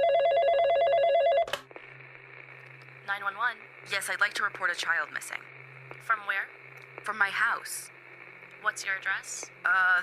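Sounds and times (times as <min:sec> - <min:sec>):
telephone ringing with two-tone warble: 0:00.0 - 0:01.5.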